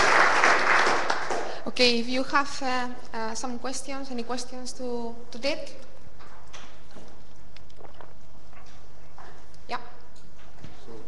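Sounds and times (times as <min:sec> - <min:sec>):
steady low hum: 0:01.1 - 0:11.0.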